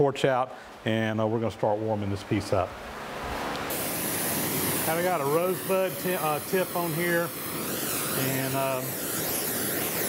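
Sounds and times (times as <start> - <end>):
gas rushing: 3.2 - 10.0
torch flame hissing: 3.7 - 10.0.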